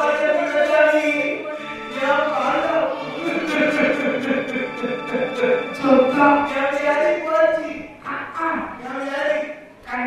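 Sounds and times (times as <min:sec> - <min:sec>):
person singing pitch-bending phrase: 0:02.2 - 0:06.6.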